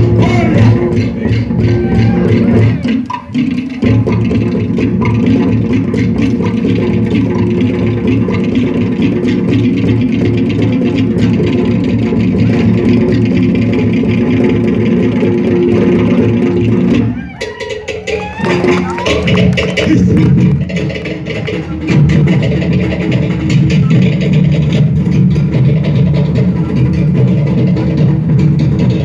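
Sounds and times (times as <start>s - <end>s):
string band music: 0.0s - 29.0s.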